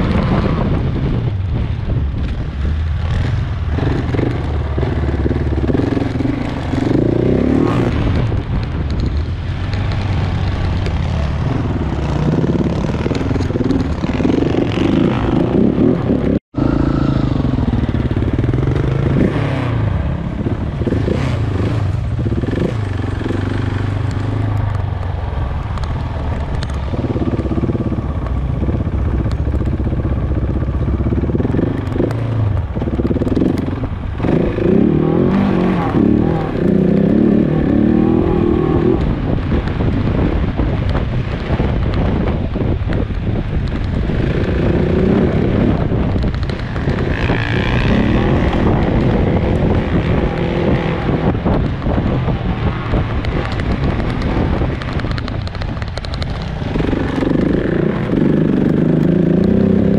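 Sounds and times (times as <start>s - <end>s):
motorcycle engine revving: 2.2s - 59.9s.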